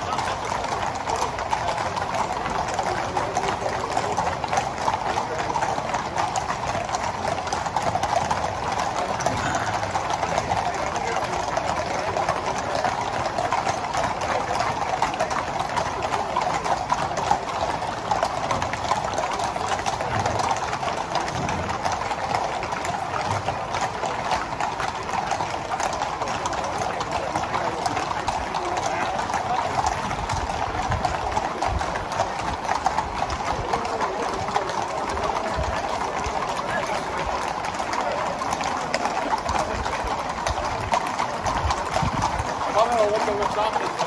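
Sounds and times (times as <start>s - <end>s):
horse hooves clip-clopping on tarmac: 0.0s - 44.0s.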